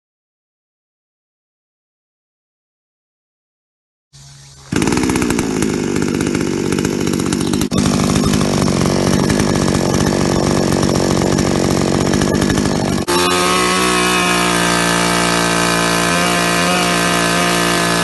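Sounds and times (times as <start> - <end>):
chainsaw running: 4.2 - 18.0.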